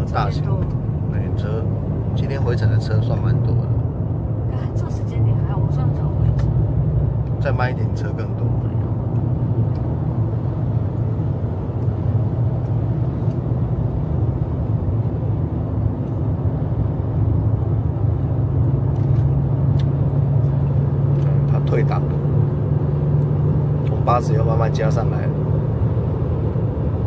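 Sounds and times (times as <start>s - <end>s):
road noise inside cabin: 0.0s - 27.0s
van engine drone: 0.0s - 27.0s.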